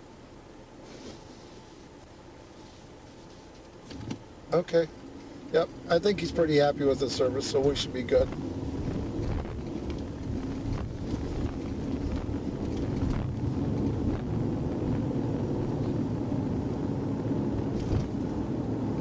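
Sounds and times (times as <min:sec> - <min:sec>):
car engine and tyres rumbling: 0:00.0 - 0:19.0
faint steady hum: 0:00.0 - 0:19.0.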